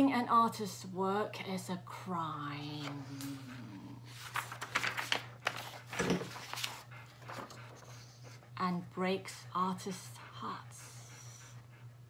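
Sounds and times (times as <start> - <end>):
paper rustling: 4.1 - 8.0
dog panting softly: 5.5 - 12.0.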